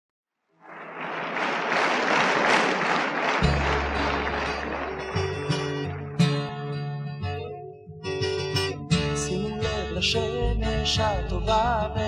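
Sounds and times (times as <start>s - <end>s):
audience applauding: 0.6s - 7.4s
band music: 3.4s - 6.7s.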